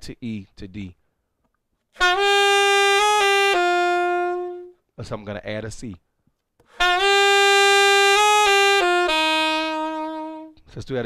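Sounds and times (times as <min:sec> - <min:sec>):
saxophone phrase: 0:02.0 - 0:04.8, 0:06.8 - 0:10.7.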